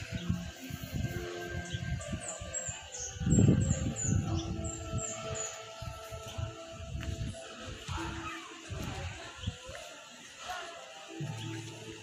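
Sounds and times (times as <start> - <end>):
bird chirping: 0.0 - 6.4.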